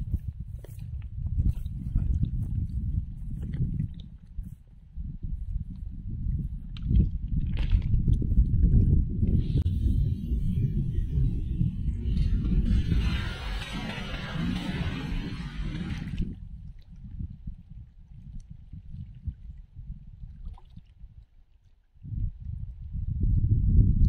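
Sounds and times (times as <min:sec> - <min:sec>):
wind buffeting microphone: 0:00.0 - 0:21.3, 0:22.0 - 0:24.0.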